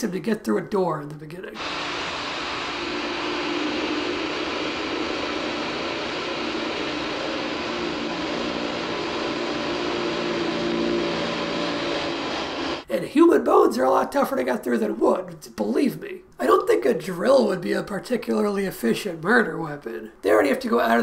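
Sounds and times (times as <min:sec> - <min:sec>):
power drill boring into wood: 0:01.6 - 0:12.8.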